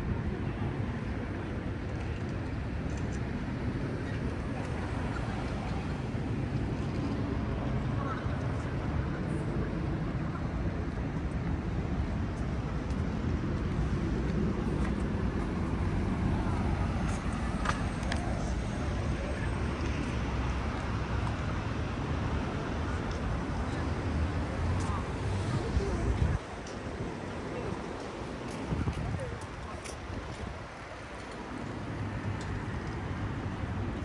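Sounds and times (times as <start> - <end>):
city traffic rumble: 0.0 - 34.0
faint voices: 3.5 - 11.3, 14.3 - 33.6.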